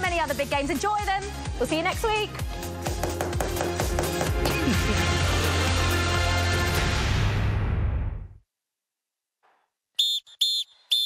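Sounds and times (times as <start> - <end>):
referee's whistle blasts: 10.0 - 11.0.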